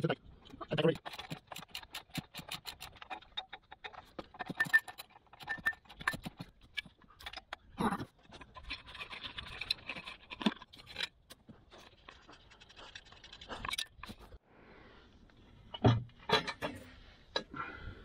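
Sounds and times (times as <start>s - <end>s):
sharp metal clicks: 0.5s - 7.6s.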